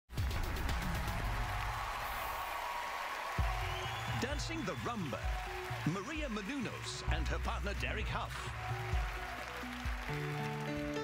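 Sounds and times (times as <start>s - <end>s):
television theme music: 0.1s - 11.0s.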